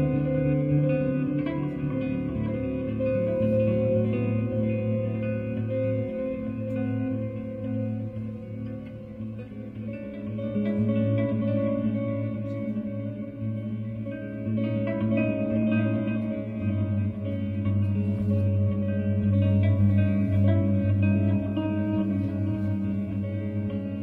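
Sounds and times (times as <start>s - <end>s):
electric guitar ringing notes: 0.0s - 24.0s.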